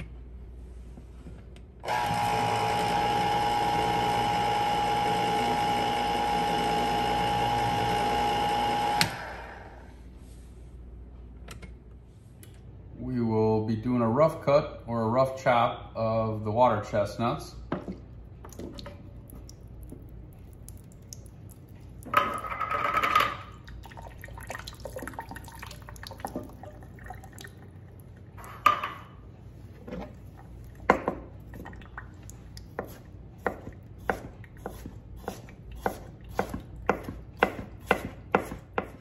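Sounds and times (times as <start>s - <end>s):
knife chopping on cutting board: 32.8s - 39.0s.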